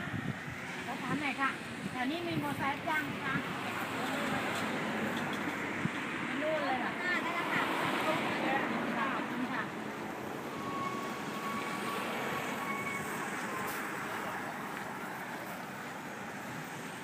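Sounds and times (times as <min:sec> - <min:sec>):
steady traffic noise: 0:00.0 - 0:17.0.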